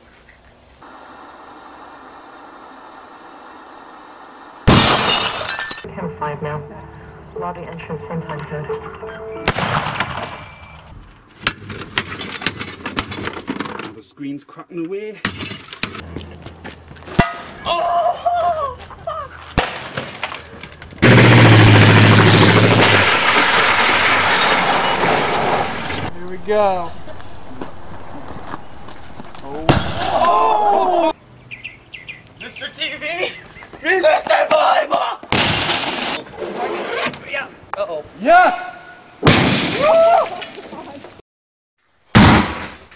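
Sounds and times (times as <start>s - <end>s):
glass screen crashing: 4.7s - 5.8s, 21.8s - 26.1s, 35.4s - 36.2s, 42.1s - 42.9s
glass picture tube shattering: 4.7s - 5.9s, 35.4s - 36.2s, 42.2s - 42.9s
sharp glass crack: 4.7s - 5.9s, 22.1s - 26.1s, 35.3s - 36.2s, 42.1s - 42.9s.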